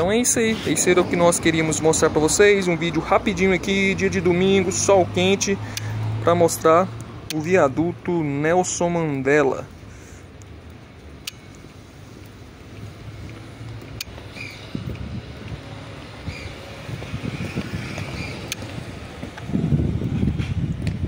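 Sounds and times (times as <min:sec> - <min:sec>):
footsteps walking past: 0:12.2 - 0:21.0.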